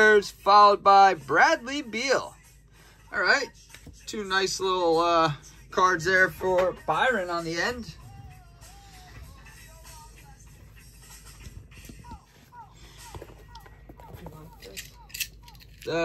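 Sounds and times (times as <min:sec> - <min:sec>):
faint background music: 0:00.0 - 0:16.0.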